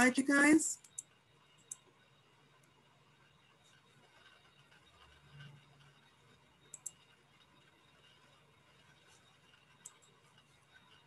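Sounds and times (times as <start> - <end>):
sharp clicks: 0.8 - 1.9, 6.7 - 7.0.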